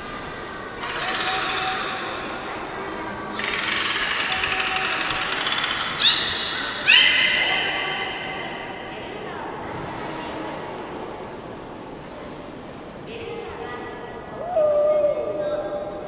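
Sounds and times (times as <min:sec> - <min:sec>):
whale squealing calls: 0:03.3 - 0:08.3.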